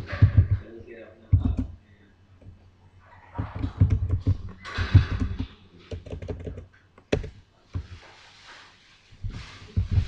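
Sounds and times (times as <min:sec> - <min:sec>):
computer keyboard typing: 0:00.0 - 0:00.6, 0:01.3 - 0:01.8, 0:03.4 - 0:07.4.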